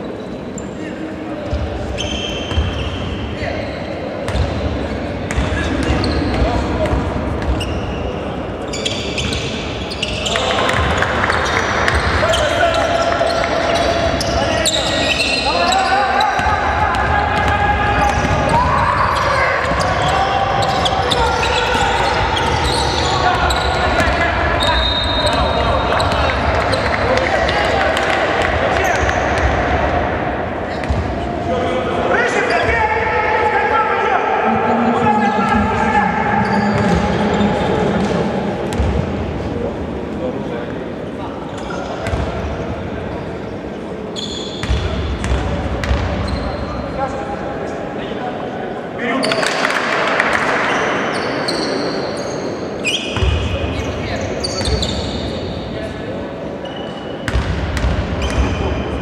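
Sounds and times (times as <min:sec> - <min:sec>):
basketball bouncing on court: 0:04.3 - 0:04.6, 0:05.3 - 0:07.8, 0:38.7 - 0:39.1, 0:42.0 - 0:42.3, 0:44.6 - 0:46.4, 0:57.3 - 0:58.6
shoes squeaking: 0:05.3 - 0:16.4, 0:19.0 - 0:27.8, 0:51.2 - 0:55.4.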